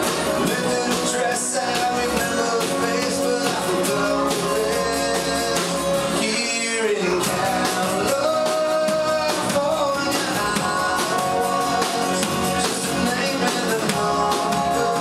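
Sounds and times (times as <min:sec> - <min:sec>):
bass guitar: 0:00.0 - 0:15.0
electric guitar: 0:00.0 - 0:15.0
man singing: 0:00.0 - 0:15.0
strummed acoustic guitar: 0:00.0 - 0:15.0.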